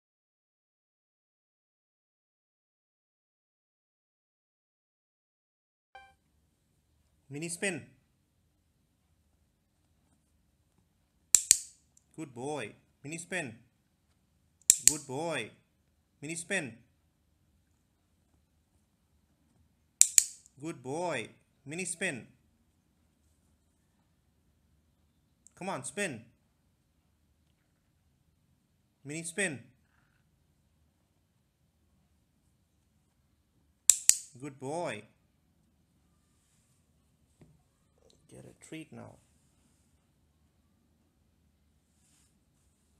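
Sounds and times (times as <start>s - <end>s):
sharp loud clicks: 11.3s - 11.8s, 14.6s - 15.1s, 20.0s - 20.5s, 33.9s - 34.4s.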